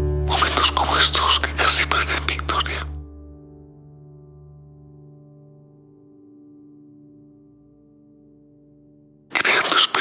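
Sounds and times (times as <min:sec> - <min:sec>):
person whispering: 0:00.3 - 0:03.0, 0:09.3 - 0:10.0.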